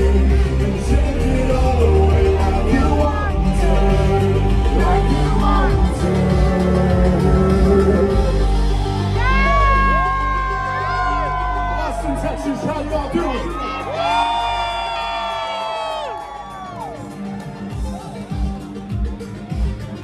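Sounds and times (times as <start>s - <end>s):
audience whooping: 9.2s - 17.2s.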